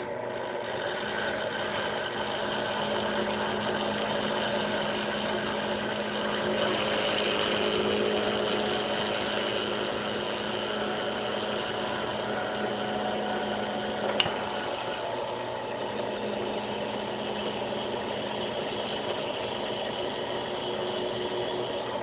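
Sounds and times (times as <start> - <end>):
drill bit cutting steel: 0.0 - 22.0
drill press motor running: 0.0 - 22.0.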